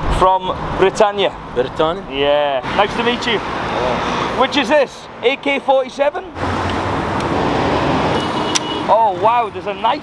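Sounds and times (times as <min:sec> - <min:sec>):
vehicle passing close by: 0:06.3 - 0:08.6.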